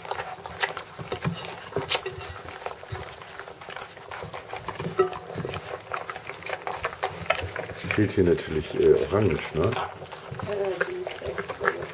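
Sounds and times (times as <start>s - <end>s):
puppies eating smacking: 0.0s - 11.9s.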